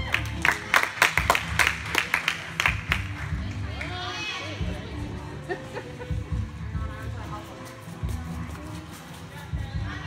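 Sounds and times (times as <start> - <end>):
people clapping: 0.0 - 4.0
music playing: 0.0 - 10.0.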